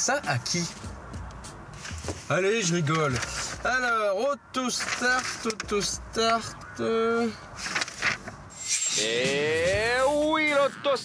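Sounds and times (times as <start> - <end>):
paper rustling and crinkling: 1.8 - 3.8, 4.6 - 6.6, 7.6 - 8.4.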